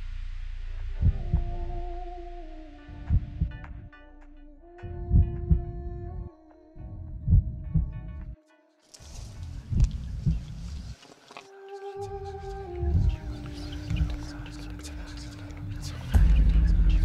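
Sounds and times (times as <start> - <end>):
heartbeat-like low thumps: 0.0 - 8.4, 9.6 - 10.8, 12.6 - 15.0, 15.6 - 17.0
sustained drone tones: 0.0 - 8.4, 11.5 - 17.0.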